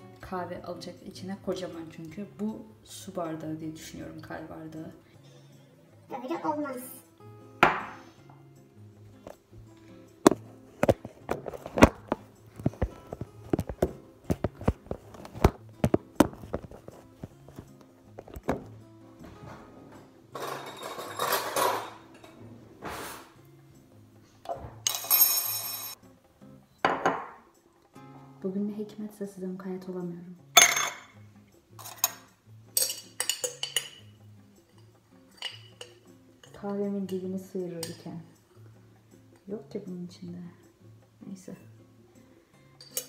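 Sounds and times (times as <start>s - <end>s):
quiet background music: 0.0s - 43.0s
rustling noise: 10.4s - 18.6s.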